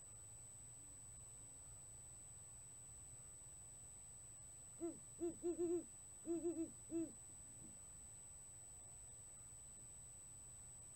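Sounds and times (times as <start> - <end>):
owl hooting: 4.8 - 7.2.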